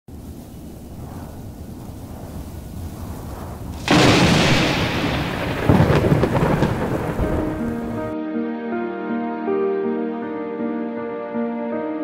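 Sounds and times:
steady rain: 0.1s - 8.2s
thunder rumbling: 0.1s - 8.2s
sustained music notes: 6.3s - 12.0s.

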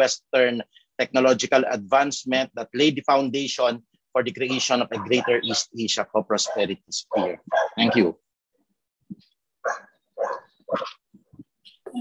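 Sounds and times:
dog barking: 4.5s - 5.8s, 6.4s - 8.1s, 9.6s - 11.0s.

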